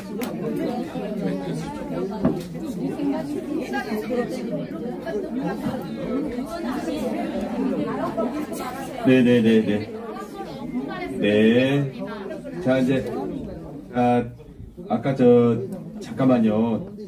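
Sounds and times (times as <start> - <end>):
murmur of many people talking: 0.0 - 17.0.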